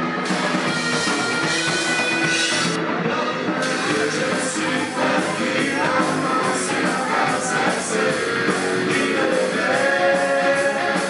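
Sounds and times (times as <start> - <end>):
bass guitar: 0.0 - 11.0
drum kit: 0.0 - 11.0
electric guitar: 0.0 - 11.0.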